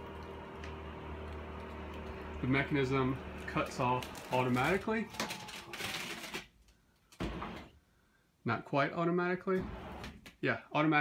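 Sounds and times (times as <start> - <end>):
electric lift motor humming and clicking: 0.0 - 5.9.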